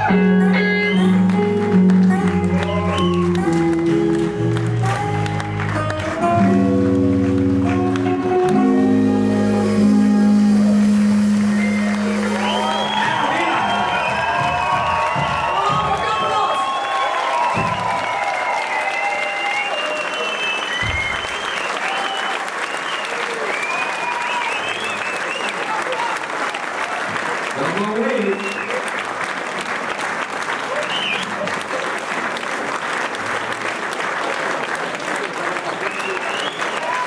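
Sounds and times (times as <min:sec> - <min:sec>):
audience applauding: 0:00.0 - 0:37.0
crowd shouts: 0:12.2 - 0:20.0.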